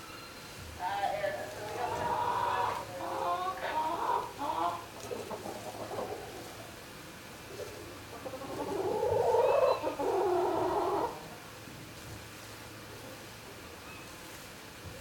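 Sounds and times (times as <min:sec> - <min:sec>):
chickens calling: 0:00.8 - 0:11.4.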